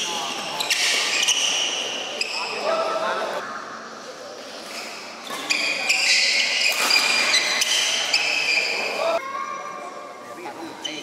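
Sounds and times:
sports shoes squeaking: 0.0s - 2.7s, 4.8s - 9.1s.

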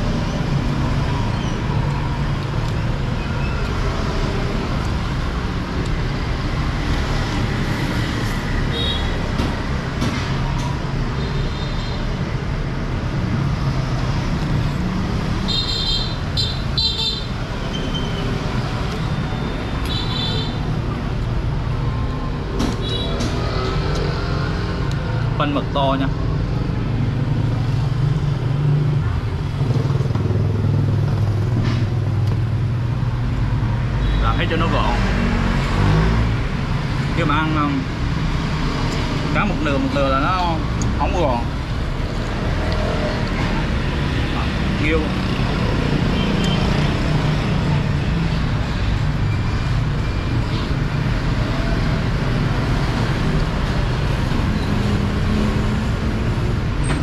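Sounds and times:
road traffic rumbling: 0.0s - 57.0s.

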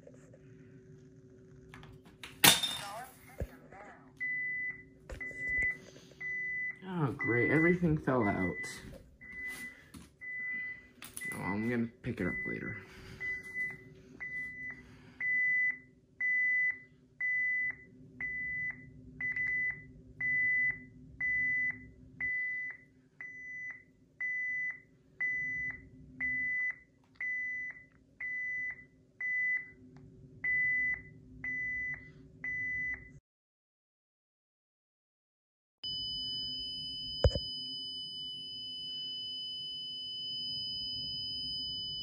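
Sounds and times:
alarm panel beeping: 4.2s - 29.7s.

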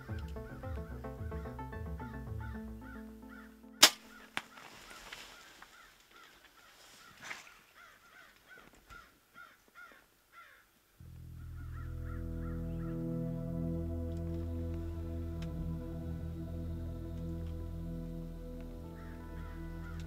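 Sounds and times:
background music: 0.0s - 4.9s, 11.0s - 20.0s
sharp bow crack: 3.8s - 5.3s.

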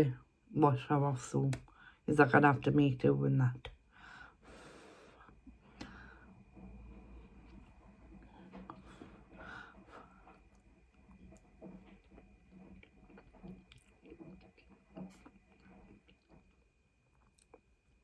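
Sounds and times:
chewing mouth sounds: 12.8s - 16.5s.

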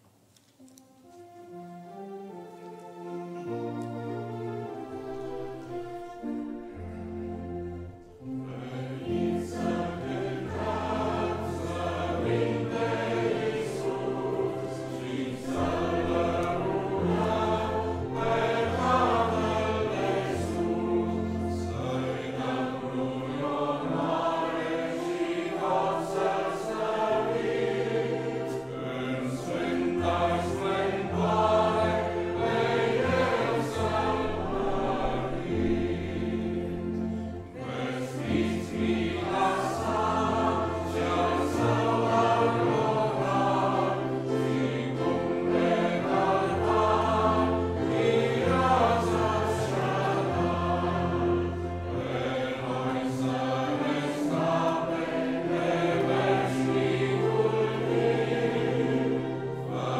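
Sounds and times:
grand piano: 0.0s - 59.9s
congregation singing a hymn: 0.7s - 59.9s.

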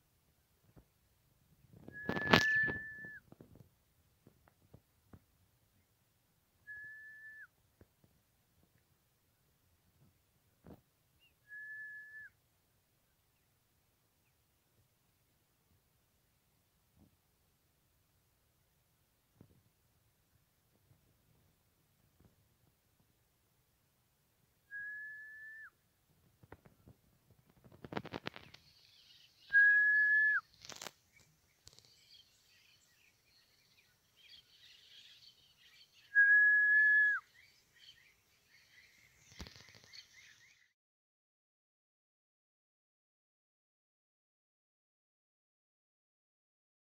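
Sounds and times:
faint bird chirps: 1.7s - 3.3s, 27.9s - 40.8s
high steady whistle: 1.9s - 3.2s, 6.7s - 7.5s, 11.5s - 12.4s, 24.7s - 25.8s, 29.5s - 30.4s, 36.1s - 37.2s.

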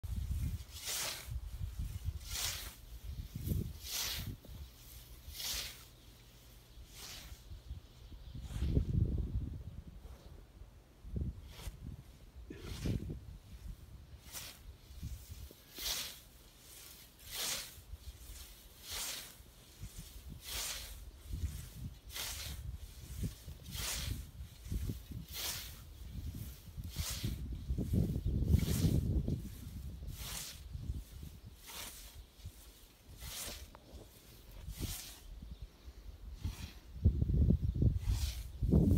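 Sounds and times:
scythe swishing through grass: 0.0s - 7.6s, 11.4s - 35.4s, 36.3s - 38.9s.

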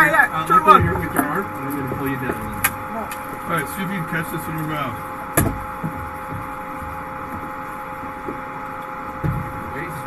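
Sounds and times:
faint two-tone hum: 0.0s - 10.0s.

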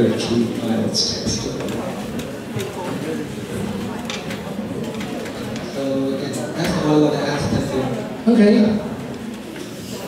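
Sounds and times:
murmur of audience voices: 0.0s - 10.0s.

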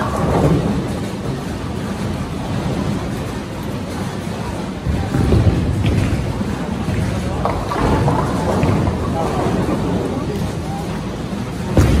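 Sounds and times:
bowling pins clattering: 0.0s - 10.6s
bowling balls rolling: 0.0s - 12.0s.

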